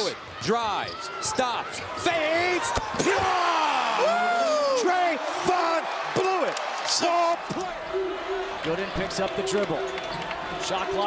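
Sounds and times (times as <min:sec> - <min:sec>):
crowd cheering and yelling: 0:00.0 - 0:11.0.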